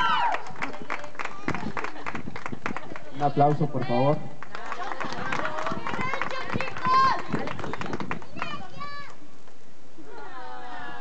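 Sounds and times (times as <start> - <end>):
people clapping: 0.0 - 9.2
people talking: 4.8 - 9.2.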